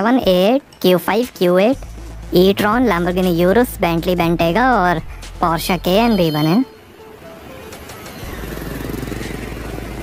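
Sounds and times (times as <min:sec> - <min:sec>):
engine running with low rumble: 0:07.0 - 0:10.0.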